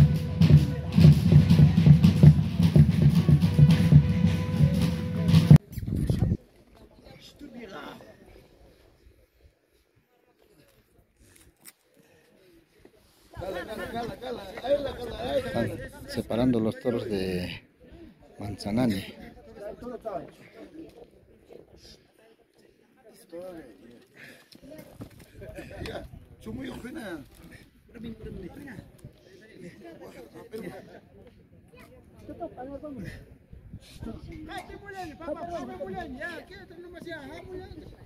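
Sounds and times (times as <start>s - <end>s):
people talking indistinctly: 0.0s - 9.8s.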